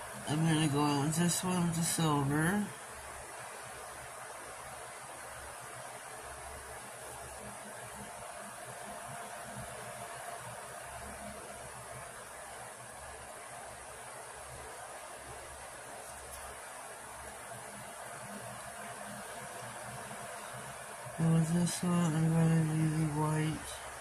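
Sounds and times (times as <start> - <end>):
background hiss: 0.0 - 24.0.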